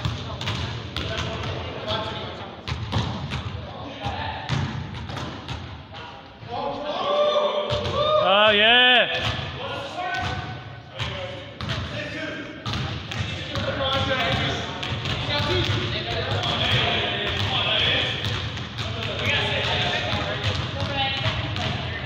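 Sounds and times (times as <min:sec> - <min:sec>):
basketball bouncing on gym floor: 0:00.0 - 0:02.0, 0:02.6 - 0:05.8, 0:10.1 - 0:12.0, 0:12.6 - 0:22.0
players shouting and chatter: 0:00.0 - 0:22.0
loud drawn-out shout: 0:06.8 - 0:09.1.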